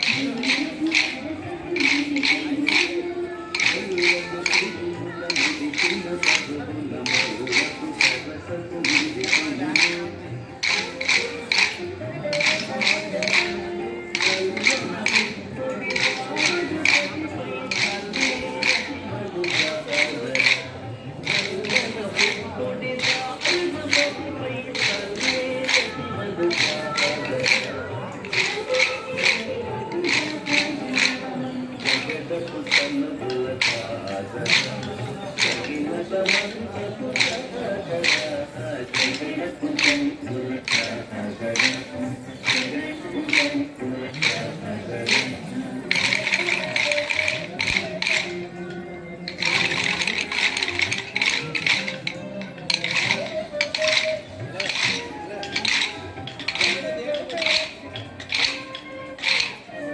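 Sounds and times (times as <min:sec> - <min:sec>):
folk song with music: 0:00.0 - 0:59.9
wooden sticks clacking: 0:00.0 - 0:59.9.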